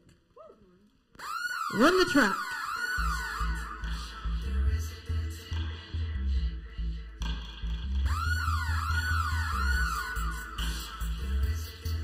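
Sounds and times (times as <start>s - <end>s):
reggae track with deep bass: 3.0s - 12.0s.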